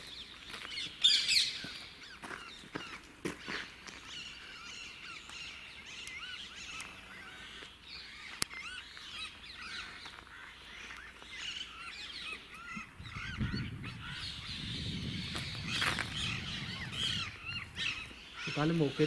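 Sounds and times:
birds chirping and calling: 0.0 - 19.0.

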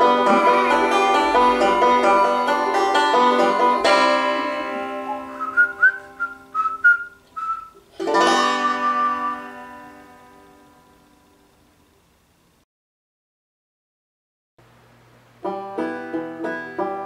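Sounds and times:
banjo strummed chords: 0.0 - 6.9, 7.8 - 11.3, 15.4 - 17.0
person whistling: 4.8 - 7.8, 8.5 - 9.6.

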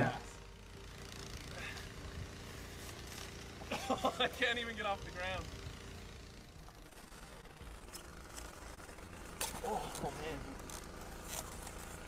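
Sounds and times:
man laughing: 3.6 - 4.6.

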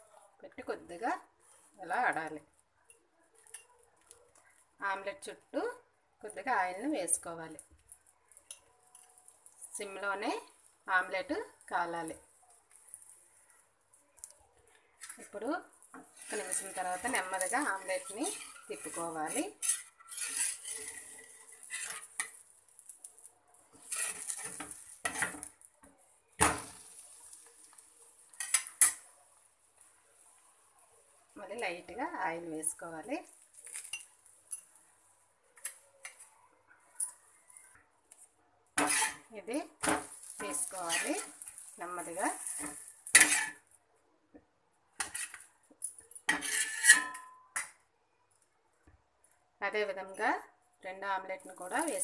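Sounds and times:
faint frying sizzle: 0.0 - 52.0
steel spatula scraping iron pan: 15.9 - 22.9, 23.7 - 25.5, 26.4 - 29.1, 38.8 - 43.7, 45.0 - 45.5, 46.2 - 47.7.

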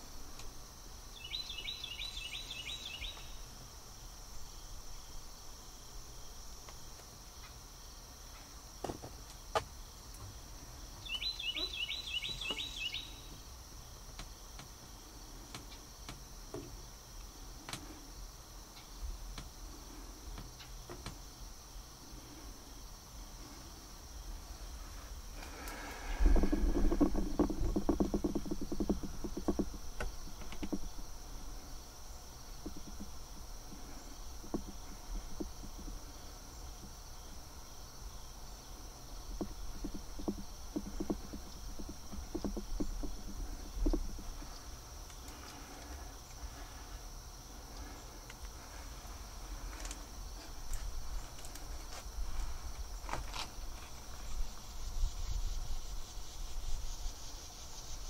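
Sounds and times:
insect chorus humming: 0.0 - 58.0
pulsed insect trills: 0.0 - 58.0
rapid close rattling: 25.4 - 31.7, 39.4 - 46.9.

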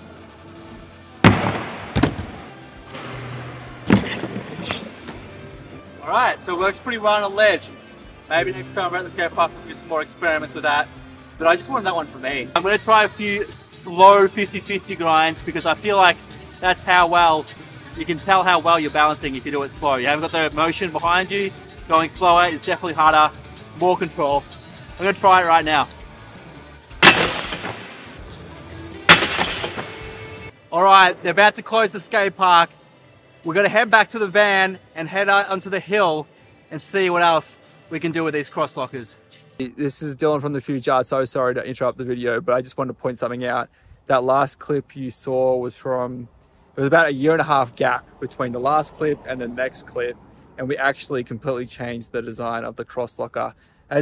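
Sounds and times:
board slamming on ledge: 1.2 - 2.4, 3.9 - 4.8, 27.0 - 27.9, 29.1 - 30.0
board knocking and landing: 1.3 - 2.4, 3.9 - 5.2
board trucks scraping ledge: 3.0 - 5.2
board banging on metal ledge: 27.0 - 27.9, 29.1 - 30.0.

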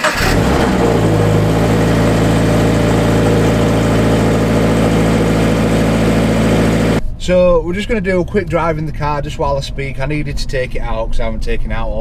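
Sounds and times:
car engine starting and idling: 0.0 - 7.0.

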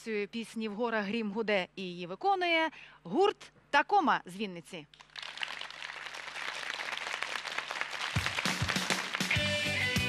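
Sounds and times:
studio audience applause: 4.9 - 10.0.

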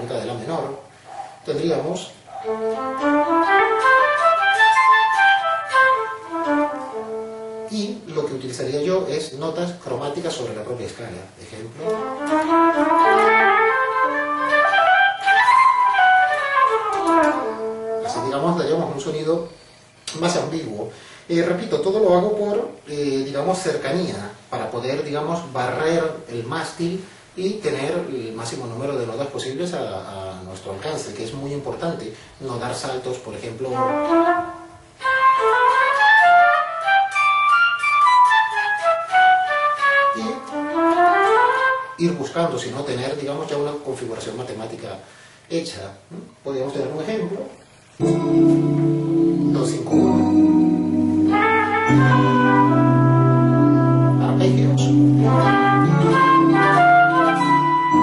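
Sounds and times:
synthesized electric guitar scale: 2.4 - 7.4, 11.8 - 18.5, 48.0 - 58.0.

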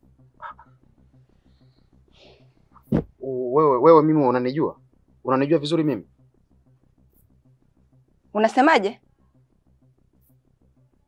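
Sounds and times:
frogs croaking: 0.3 - 2.4.

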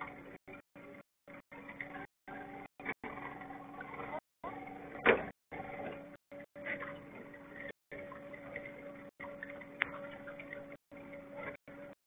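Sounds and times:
steady low hum: 0.0 - 12.0
water lapping against boat hull: 0.0 - 12.0.

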